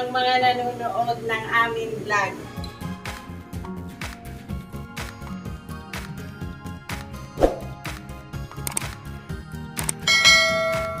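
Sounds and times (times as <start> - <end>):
bright bell chime: 10.1 - 11.0.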